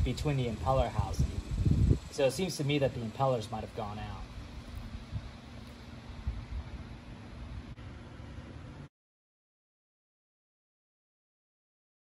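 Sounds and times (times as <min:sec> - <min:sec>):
faint hum: 0:00.0 - 0:08.9.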